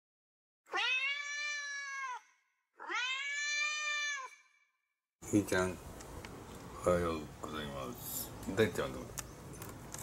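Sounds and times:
cat meowing: 0.7s - 4.5s.

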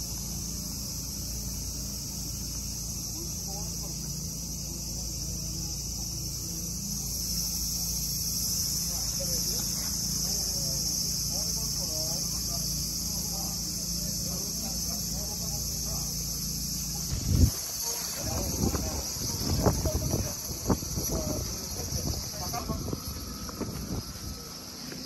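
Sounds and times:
faint voices: 0.0s - 25.0s
insects chirping chorus: 0.0s - 25.0s.

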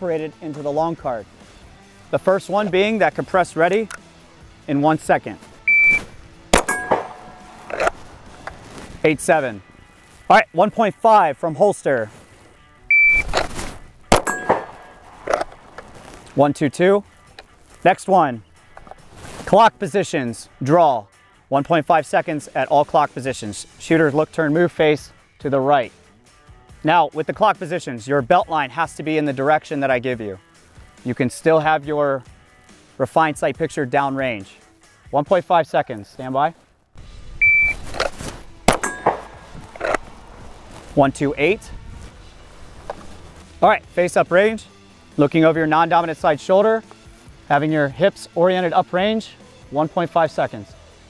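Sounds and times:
shot timer beep: 5.7s - 7.6s, 12.9s - 13.3s, 37.4s - 37.8s
pistol shot: 6.5s - 8.1s, 14.1s - 15.5s, 38.7s - 39.6s
steel target ringing: 6.6s - 7.8s, 14.1s - 15.1s, 38.7s - 39.7s.

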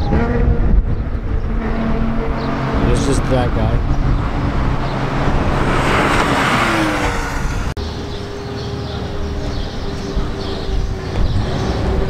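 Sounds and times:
sports car passing at speed: 1.5s - 9.5s.

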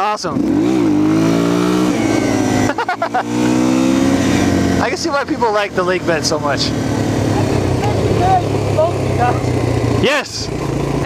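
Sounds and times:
motorcycle engine cruising steadily: 0.0s - 11.0s.

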